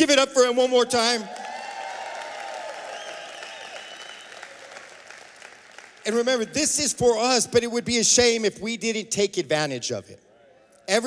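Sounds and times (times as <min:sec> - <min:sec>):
congregation applauding: 0:01.0 - 0:06.9.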